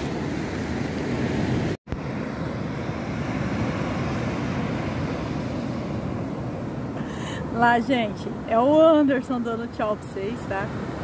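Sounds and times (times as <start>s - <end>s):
ocean surf washing onto beach: 0.0s - 11.0s.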